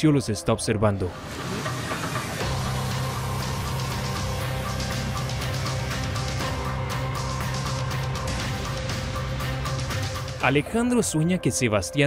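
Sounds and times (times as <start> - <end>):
low sustained drone music: 1.0 - 12.0.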